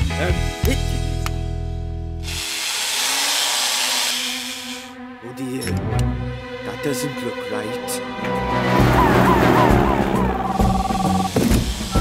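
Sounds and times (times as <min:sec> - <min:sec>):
cordless drill whirring: 0:02.2 - 0:05.0.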